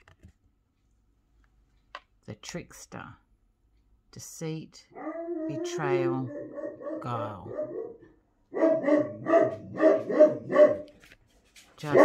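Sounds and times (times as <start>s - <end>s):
dog barking sharply: 6.4s - 10.9s.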